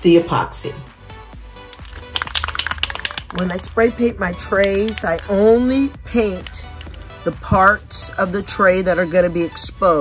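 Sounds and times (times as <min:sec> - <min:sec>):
background music: 0:00.0 - 0:10.0
spray can mixing ball rattling: 0:01.7 - 0:03.7, 0:04.5 - 0:05.4.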